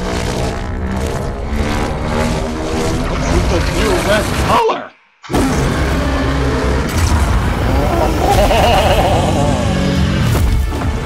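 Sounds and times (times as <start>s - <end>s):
low rumble of effects: 0.0s - 11.0s.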